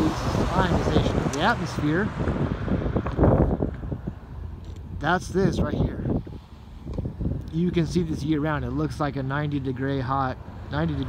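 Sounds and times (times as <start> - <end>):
wind blowing across microphone: 0.0 - 9.7.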